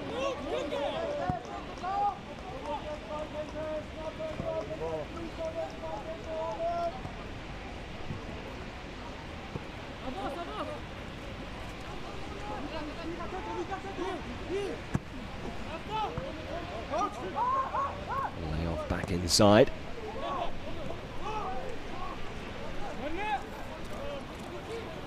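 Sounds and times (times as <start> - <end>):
players shouting: 0.0 - 7.2, 12.0 - 25.0
background hiss: 2.0 - 25.0.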